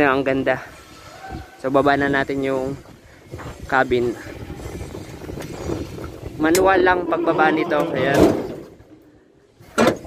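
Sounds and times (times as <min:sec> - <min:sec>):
truck cab latching clunk: 0:09.7 - 0:10.0.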